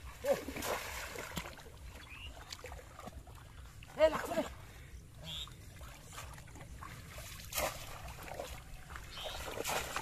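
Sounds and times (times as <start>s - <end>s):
water splashing: 0.0s - 10.0s.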